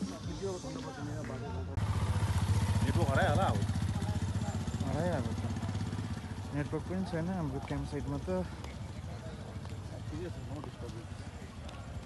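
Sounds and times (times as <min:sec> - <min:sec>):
voices calling out: 0:00.0 - 0:12.0
motorcycle engine running: 0:01.8 - 0:12.0.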